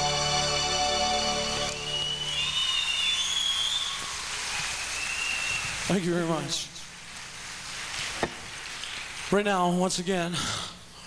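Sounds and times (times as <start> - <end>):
high whistles: 0.0 - 5.9
audience applause: 1.6 - 6.0.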